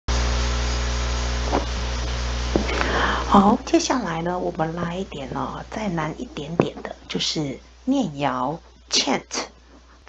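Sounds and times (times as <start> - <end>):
electrical mains hum: 0.1 - 10.0.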